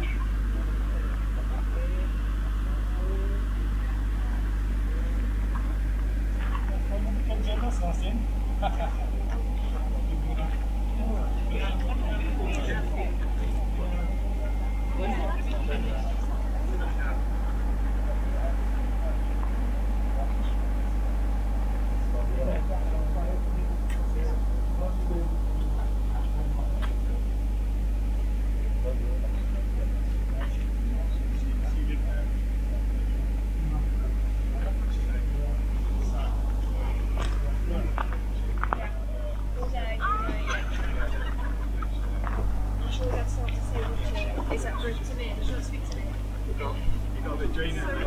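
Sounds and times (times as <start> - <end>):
low hum and rumble: 0.0 - 48.0
people chatting at a distance: 0.0 - 48.0.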